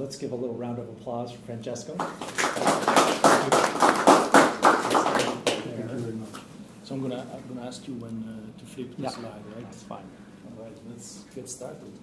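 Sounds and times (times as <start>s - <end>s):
audience applauding: 2.0s - 5.7s.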